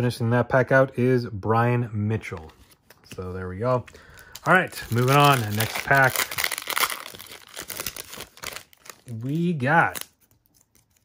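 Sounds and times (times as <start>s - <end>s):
foil wrapper tearing and crinkling: 4.2s - 11.0s.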